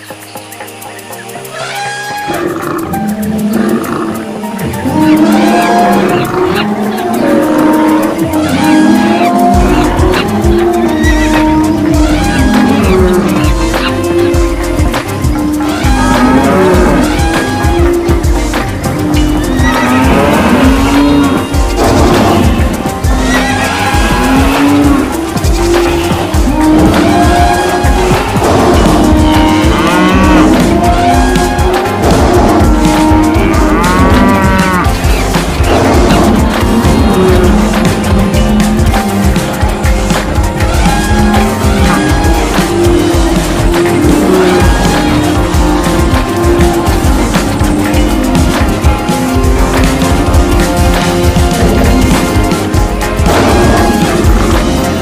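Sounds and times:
herd hoofbeats rumbling: 0.0 - 55.0
music with ticking beat: 0.0 - 55.0
animal roars and calls: 1.0 - 55.0
cattle mooing: 1.6 - 39.7, 40.5 - 52.6.

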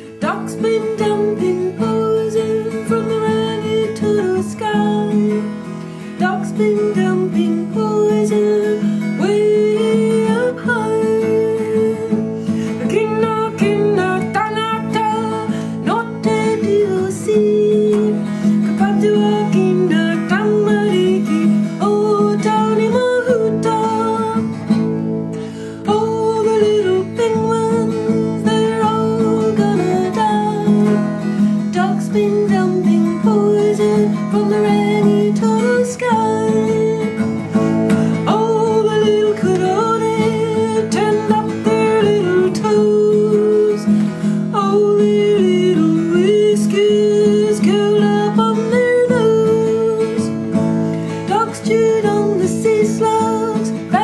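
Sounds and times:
acoustic guitar strumming: 0.0 - 54.0
person singing: 0.0 - 54.0.

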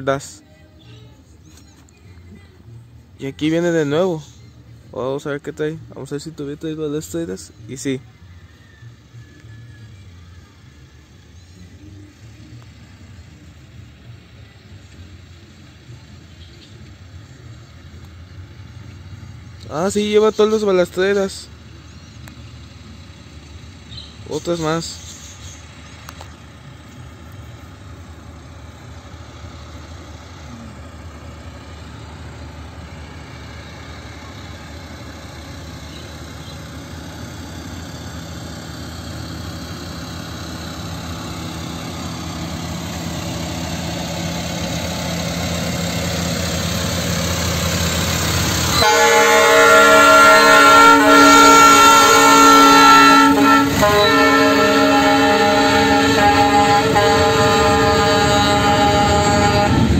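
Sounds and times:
rail cars rolling on track: 0.0 - 59.9
truck engine: 0.0 - 59.9
truck horn chord: 48.6 - 59.9.

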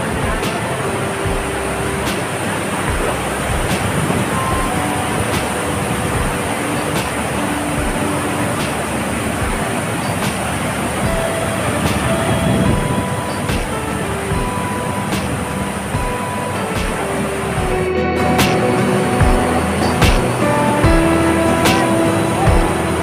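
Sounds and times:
background music with soft beat: 0.0 - 23.0
water rushing over a spillway: 0.0 - 23.0.

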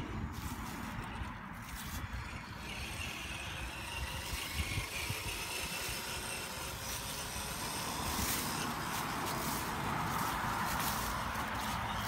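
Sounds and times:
electric motor whining: 0.0 - 12.0.

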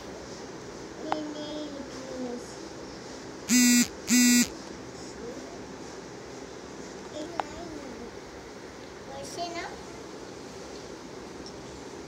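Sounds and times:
short buzzing tones: 3.5 - 4.5.

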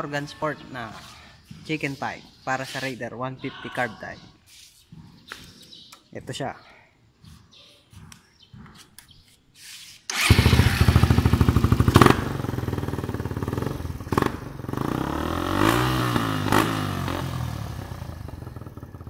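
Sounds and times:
motorcycle engine revving: 10.1 - 19.0.

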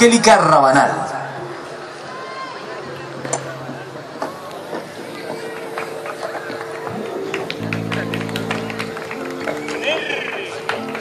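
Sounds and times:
crowd chatter and clatter: 0.0 - 11.0
band playing long low notes: 5.7 - 11.0.

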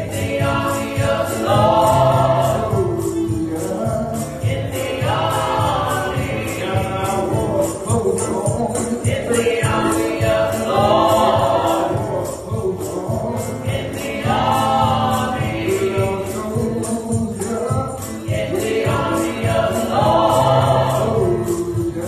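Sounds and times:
group singing into microphones: 0.0 - 22.0
steady percussive beat: 0.0 - 22.0.

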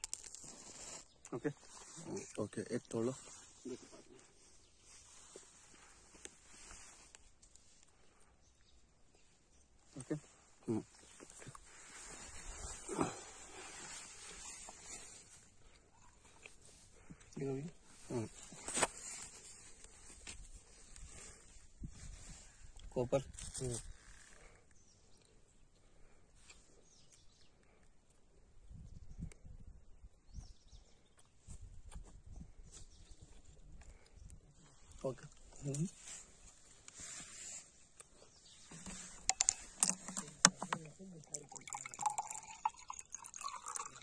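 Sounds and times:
dry leaves crunching underfoot: 0.0 - 1.0.

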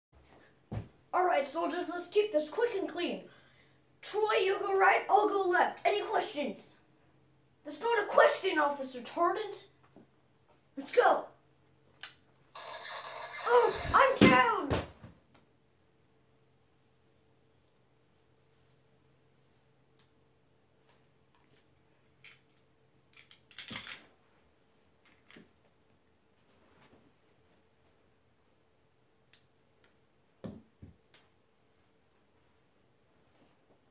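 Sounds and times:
boy crying out: 13.4 - 14.7.

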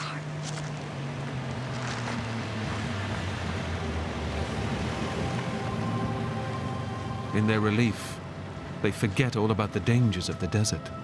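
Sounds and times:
car approaching rumble: 0.0 - 11.0
dramatic background music: 0.0 - 11.0.

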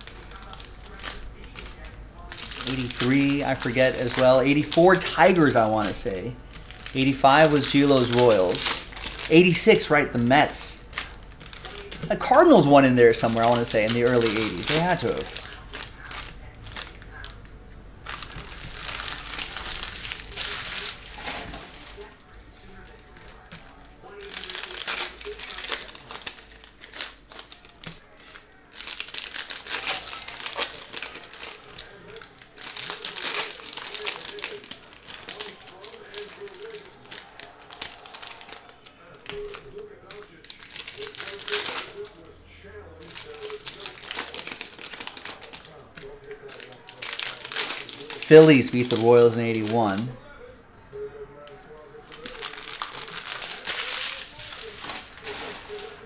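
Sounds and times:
plastic wrappers crinkling: 0.0 - 50.4, 51.0 - 56.0.

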